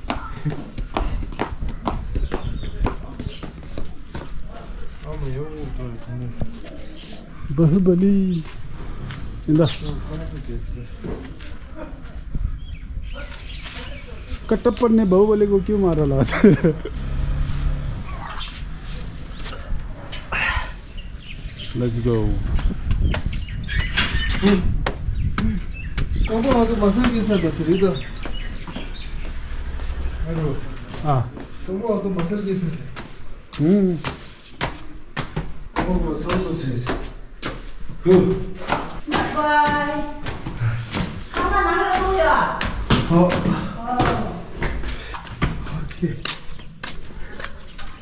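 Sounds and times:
heavy footsteps on wooden stairs: 0.0s - 4.8s, 22.4s - 30.2s, 30.8s - 48.0s.

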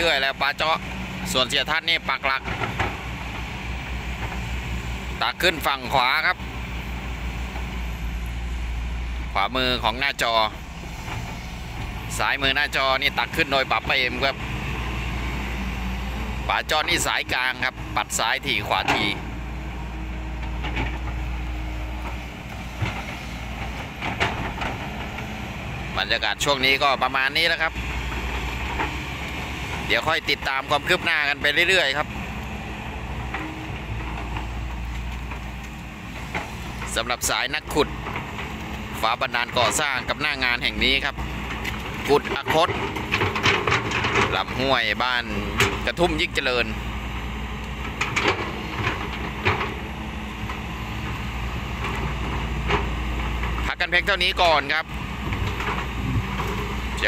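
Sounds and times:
excavator diesel engines droning: 0.0s - 57.0s.

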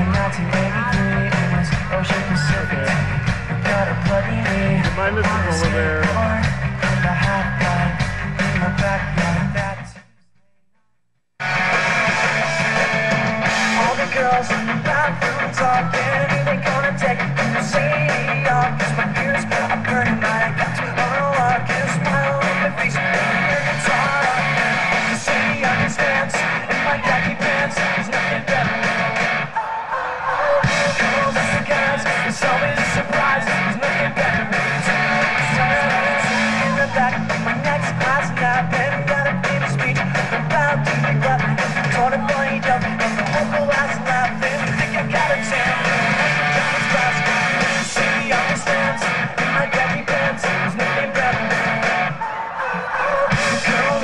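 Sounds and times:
pop-punk band playing: 0.0s - 10.0s, 11.4s - 29.6s, 30.4s - 54.0s.

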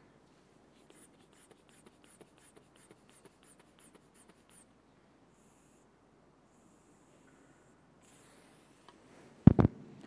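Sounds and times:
rubber bulb squeezes with air hiss: 0.8s - 4.7s.

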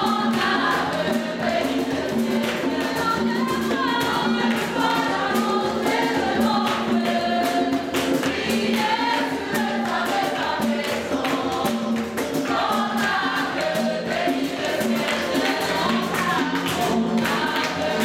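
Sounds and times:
choir singing: 0.0s - 18.0s
percussive beat: 0.0s - 18.0s.

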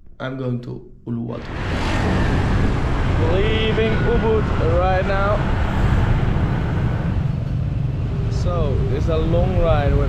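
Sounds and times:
road noise: 1.4s - 10.0s
scooter engines rumbling: 1.5s - 10.0s.

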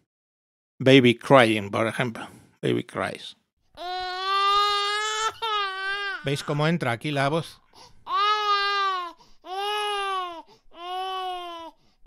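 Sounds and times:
baby crying: 3.8s - 6.7s, 7.7s - 11.8s.

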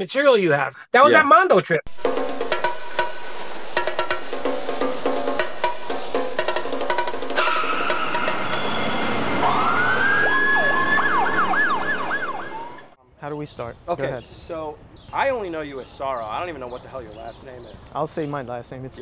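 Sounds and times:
police siren wailing and yelping: 7.4s - 13.0s.

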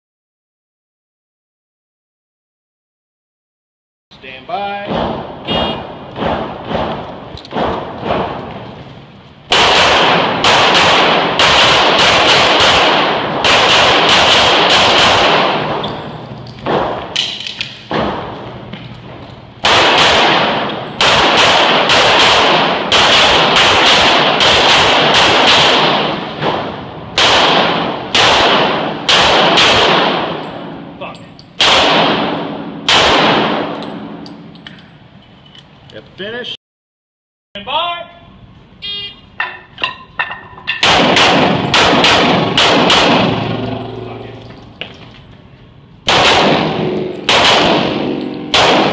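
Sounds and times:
pistol shots reverberating indoors: 9.5s - 18.6s, 19.6s - 30.9s, 31.6s - 34.7s, 40.8s - 43.7s, 46.0s - 48.9s.

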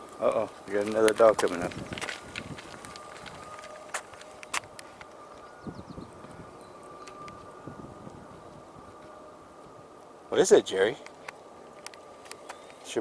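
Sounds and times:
footsteps on paved path: 0.0s - 10.1s, 10.9s - 13.0s
faint high-pitched tone: 2.7s - 10.9s.

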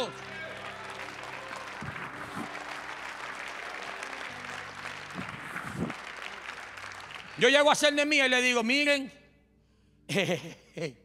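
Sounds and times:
congregation applauding: 0.0s - 8.7s.

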